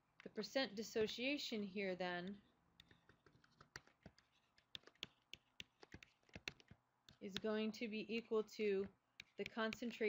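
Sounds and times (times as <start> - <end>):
stylus tapping on tablet: 2.2 - 10.0.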